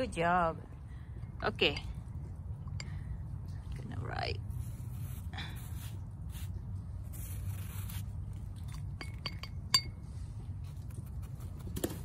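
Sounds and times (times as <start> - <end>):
steady low rumble: 0.0 - 12.0
light ringing clinks: 8.6 - 10.1.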